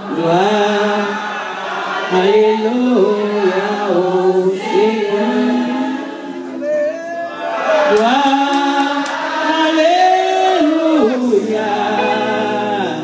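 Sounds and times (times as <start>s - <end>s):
man singing into a microphone: 0.0s - 1.3s, 2.1s - 13.0s
congregation singing: 0.0s - 13.0s.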